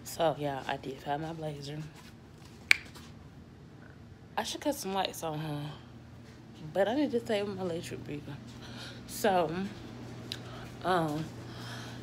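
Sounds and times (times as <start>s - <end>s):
sharp finger snap: 2.7s - 3.0s.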